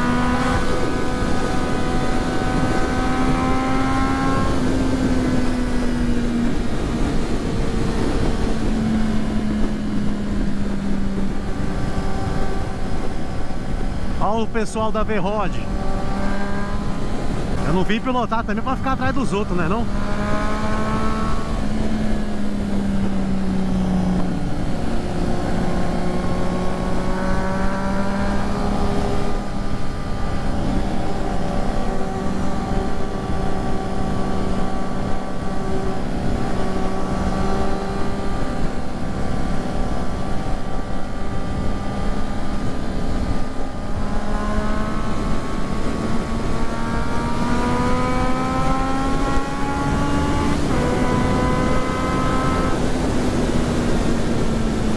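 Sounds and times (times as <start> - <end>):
heavy rush of wind: 0.0 - 54.9
motorcycle engine cruising: 0.0 - 54.9.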